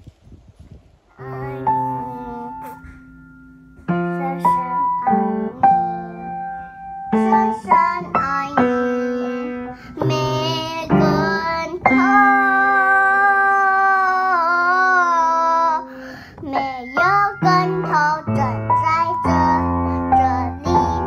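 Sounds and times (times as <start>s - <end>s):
child singing: 1.2s - 3.1s, 3.9s - 21.0s
piano chords: 1.2s - 21.0s.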